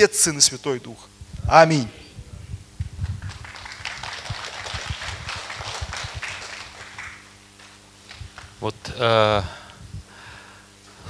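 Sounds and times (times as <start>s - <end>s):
congregation clapping: 3.0s - 8.7s.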